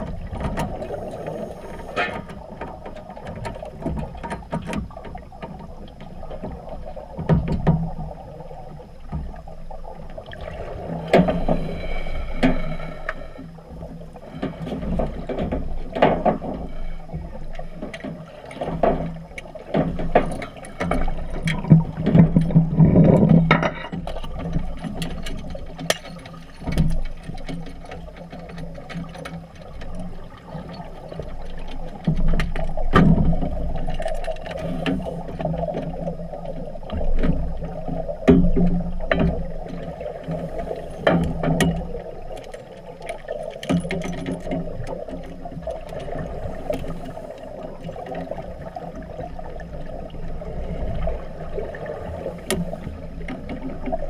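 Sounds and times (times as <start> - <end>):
metal clicks and knocks underwater: 0.0 - 8.3, 9.0 - 54.0
gurgling bubbles rumble: 0.0 - 54.0.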